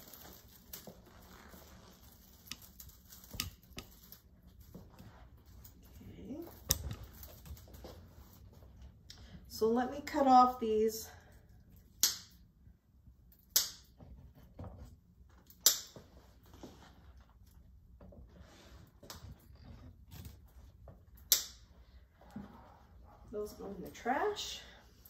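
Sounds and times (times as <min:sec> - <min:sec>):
faint rustling of mesh: 0:00.0 - 0:09.0.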